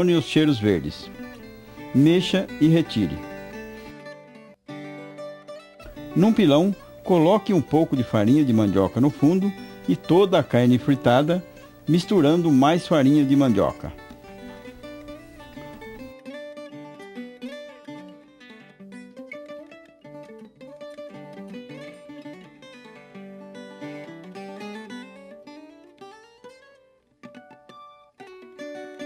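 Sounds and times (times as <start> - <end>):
plucked acoustic string music: 0.0 - 29.0.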